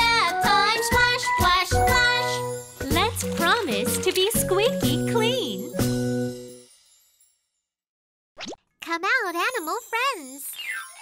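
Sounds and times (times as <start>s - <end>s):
upward-sliding pop sound effect: 8.4s - 8.6s.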